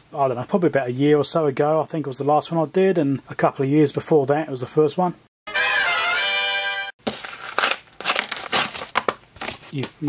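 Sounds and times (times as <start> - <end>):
plastic mailing bag crinkling: 7.0 - 10.0.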